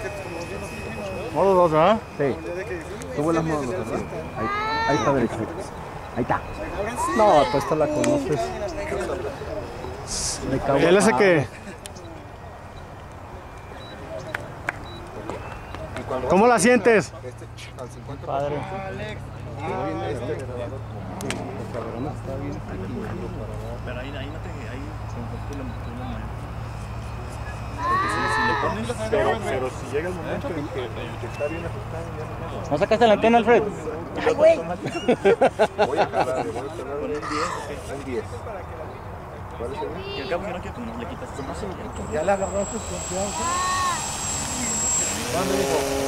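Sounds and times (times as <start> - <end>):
steady low hum: 0.0 - 7.2, 41.3 - 46.0
distant model plane propeller drone: 0.0 - 46.0
people talking in background: 0.0 - 46.0
voices: 0.0 - 46.0.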